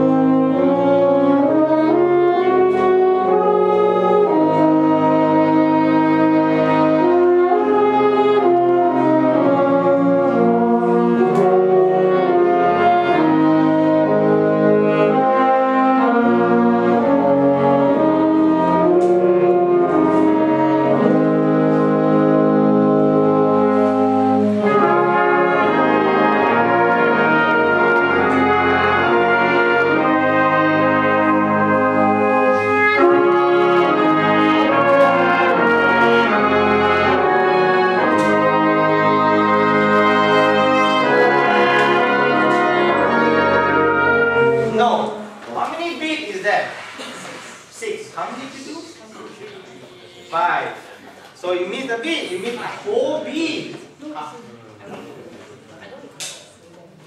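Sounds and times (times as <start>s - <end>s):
wind band playing slow chords: 0.0s - 45.4s.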